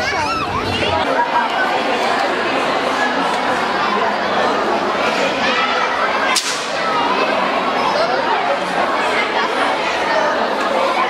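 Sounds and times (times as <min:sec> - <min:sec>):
crowd of voices chattering: 0:00.0 - 0:11.0
sharp crack: 0:06.3 - 0:06.9.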